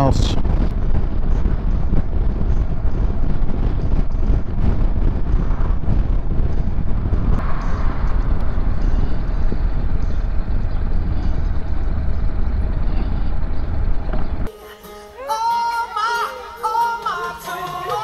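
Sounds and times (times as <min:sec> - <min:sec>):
wind rumble on microphone: 0:00.0 - 0:14.5.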